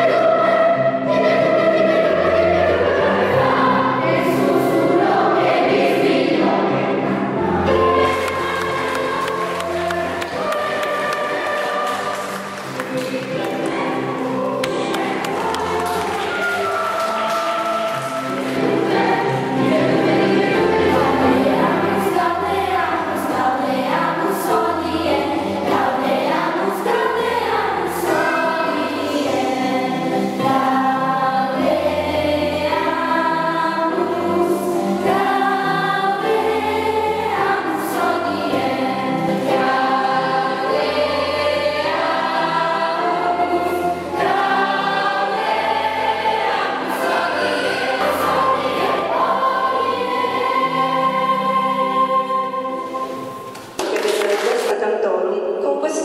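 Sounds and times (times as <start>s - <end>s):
children's choir singing: 0.0s - 54.8s
instrumental accompaniment: 0.0s - 54.8s.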